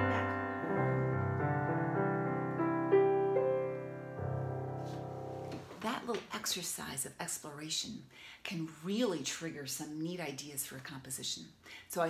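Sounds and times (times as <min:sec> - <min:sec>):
digital piano chords: 0:00.0 - 0:05.7.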